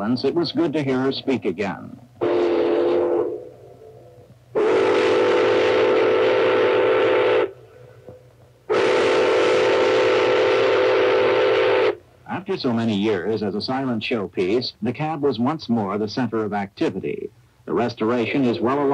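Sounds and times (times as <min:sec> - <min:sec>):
steam whistle blasts: 0:02.2 - 0:07.7, 0:08.7 - 0:12.0.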